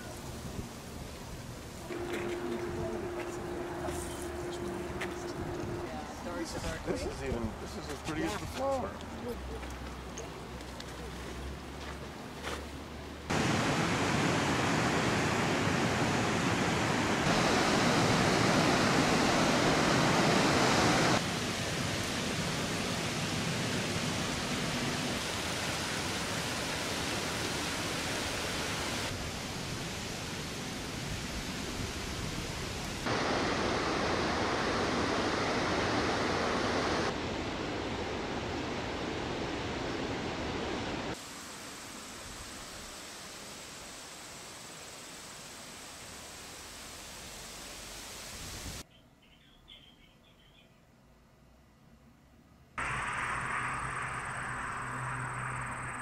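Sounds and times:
river water rushing over rocks: 13.3s - 29.8s, 33.1s - 37.5s.

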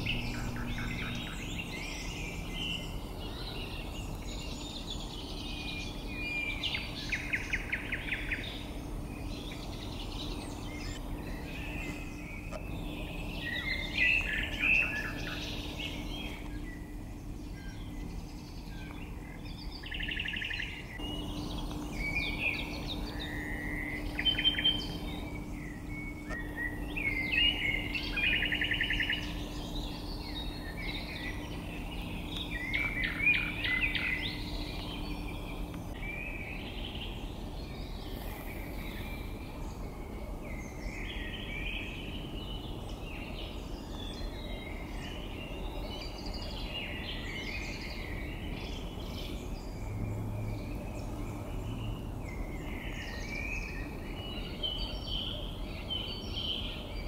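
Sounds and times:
faint low hum: 0.0s - 57.0s
songbirds singing with trills: 0.0s - 57.0s.

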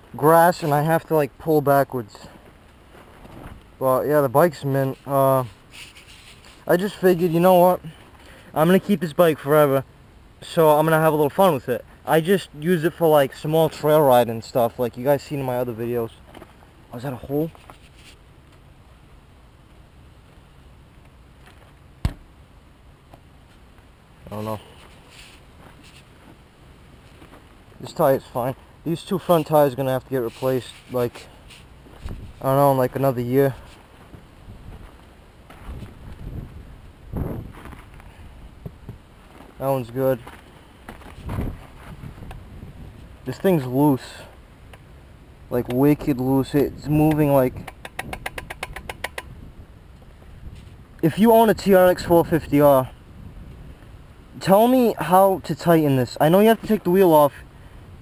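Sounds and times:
low steady background hush: 0.0s - 58.0s
rapid metal clicks: 47.6s - 49.3s.

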